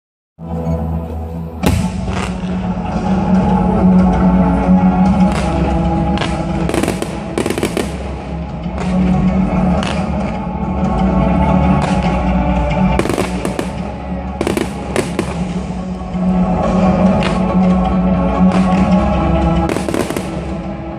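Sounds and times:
music: 0:00.4 - 0:20.9
fireworks bursting: 0:01.6 - 0:02.6, 0:05.3 - 0:09.1, 0:13.0 - 0:15.8, 0:19.6 - 0:20.7.

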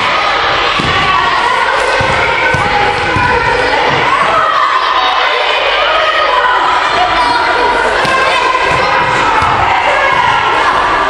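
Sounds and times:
children chattering and shouting: 0:00.0 - 0:11.0
ball bouncing on hall floor: 0:00.7 - 0:04.2, 0:08.0 - 0:10.4.

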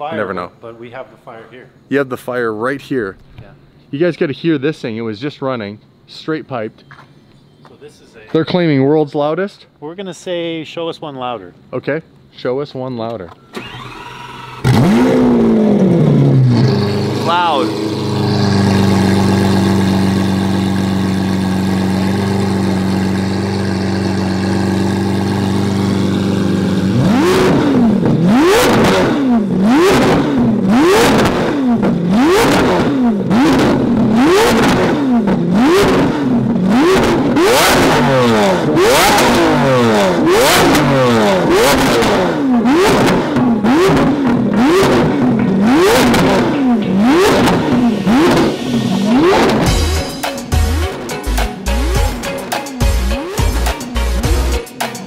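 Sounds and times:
loud car engine idling and revving: 0:13.6 - 0:54.6.

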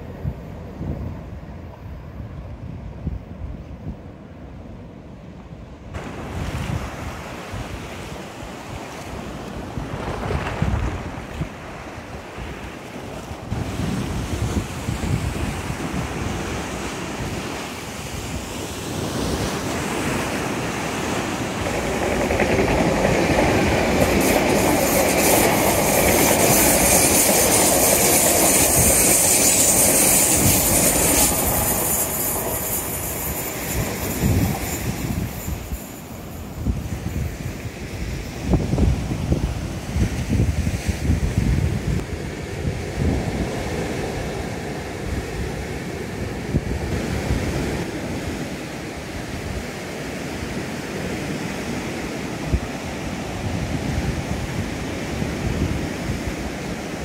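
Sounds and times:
wind on microphone: 0:00.0 - 0:04.8, 0:05.6 - 0:57.0
train running on rails: 0:00.0 - 0:57.0
waves breaking on shore: 0:04.1 - 0:57.0.

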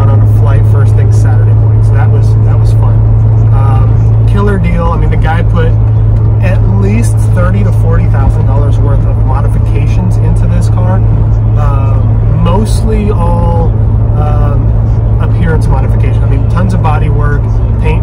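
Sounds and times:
car engine cruising drone: 0:00.0 - 0:18.0
road rumble: 0:00.0 - 0:18.0.

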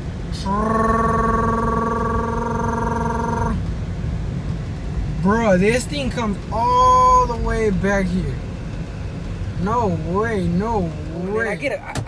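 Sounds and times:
low rumble of road noise: 0:00.0 - 0:12.0.

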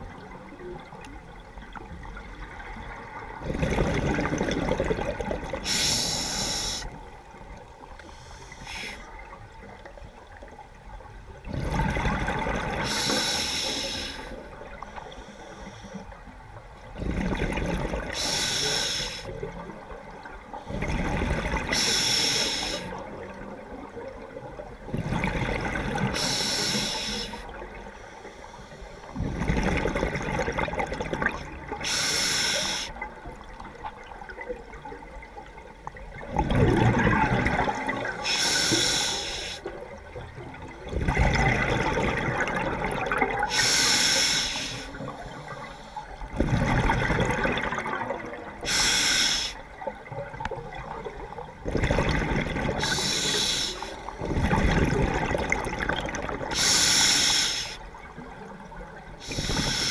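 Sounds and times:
bubbling exhalation underwater: 0:03.4 - 0:05.6, 0:36.2 - 0:38.2, 0:40.8 - 0:43.6, 0:46.3 - 0:48.7, 0:51.6 - 0:53.1, 0:54.2 - 0:56.6
hissing regulator inhalation: 0:05.7 - 0:06.9, 0:12.9 - 0:14.4, 0:18.2 - 0:19.3, 0:21.7 - 0:22.9, 0:26.2 - 0:27.4, 0:31.8 - 0:33.0, 0:38.3 - 0:39.6, 0:43.5 - 0:45.0, 0:48.7 - 0:49.6, 0:52.8 - 0:54.0, 0:56.5 - 0:57.8, 0:59.2 - 0:59.9.

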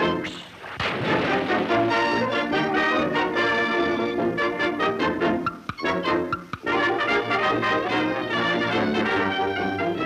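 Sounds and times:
orchestral cartoon music with brass: 0:00.0 - 0:00.4, 0:01.0 - 0:10.0
sudden bang: 0:00.8 - 0:02.1.

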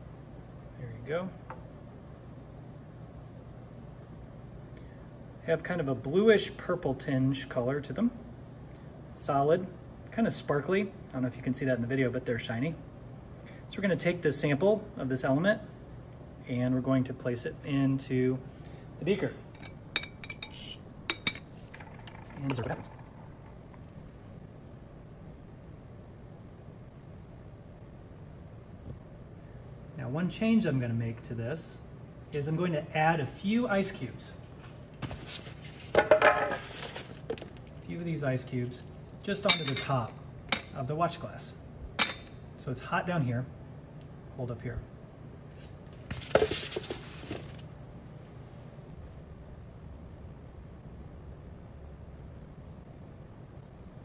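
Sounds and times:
ventilation fan hum: 0:00.0 - 0:54.0
handling rustle: 0:34.6 - 0:37.8, 0:45.6 - 0:47.7.

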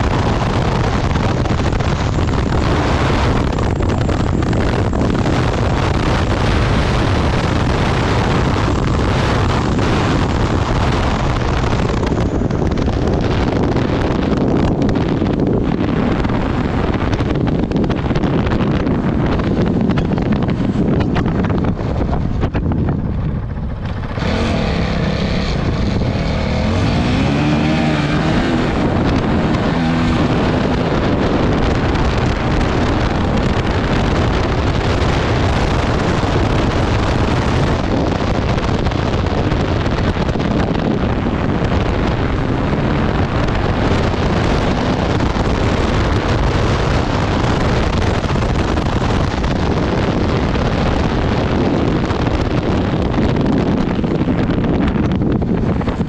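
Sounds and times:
motorcycle engine running hard: 0:00.0 - 0:56.0
wind noise on microphone: 0:00.0 - 0:56.0.

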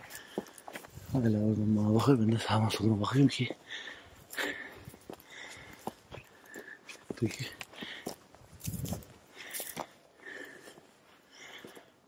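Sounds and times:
footsteps on dry grass and stones: 0:00.0 - 0:11.9.

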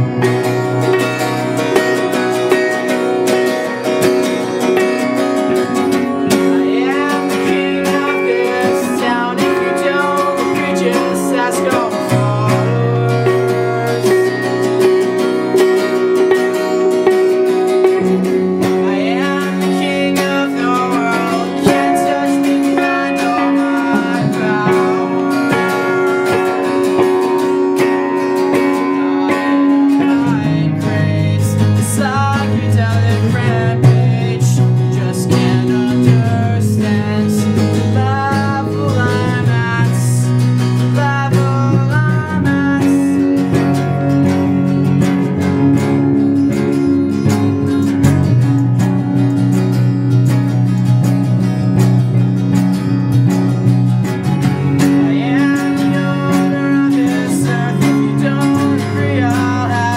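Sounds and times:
acoustic guitar strumming: 0:00.0 - 0:59.9
amplified electric guitar: 0:00.0 - 0:59.9
deep low notes: 0:00.0 - 0:59.9.

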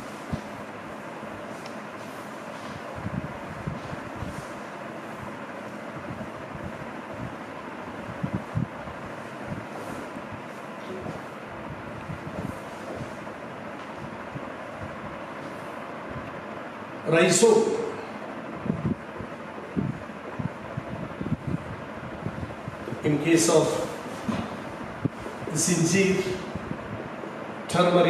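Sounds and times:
felt duster wiping whiteboard: 0:00.0 - 0:03.0, 0:03.6 - 0:05.9, 0:09.2 - 0:11.4
steady room hiss: 0:00.0 - 0:28.0.

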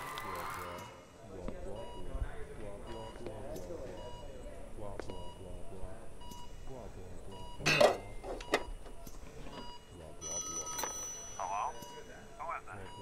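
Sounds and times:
receiver picked up: 0:07.4 - 0:09.8.

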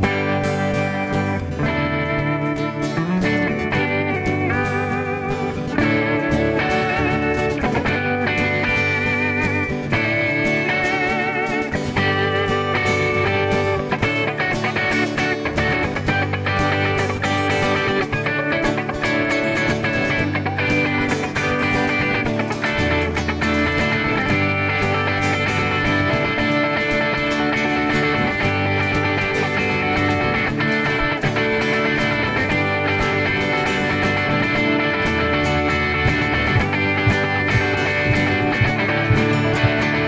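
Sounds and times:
cajon beat: 0:00.0 - 0:40.0
electric guitar lead: 0:00.0 - 0:40.0
strummed acoustic guitar: 0:00.0 - 0:40.0.

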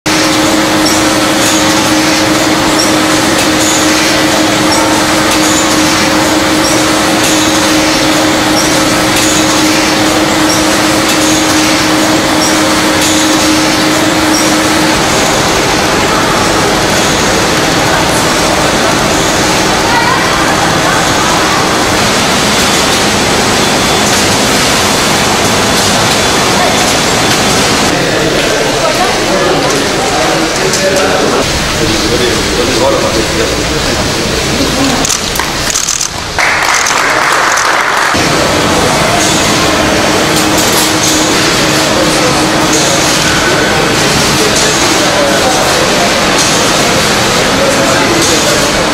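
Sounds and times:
conveyor line mechanical hiss and hum: 0:00.1 - 0:48.9.

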